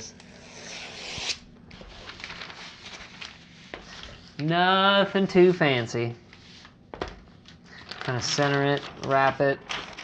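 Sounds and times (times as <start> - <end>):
hands rubbing paper: 0.5 - 4.4.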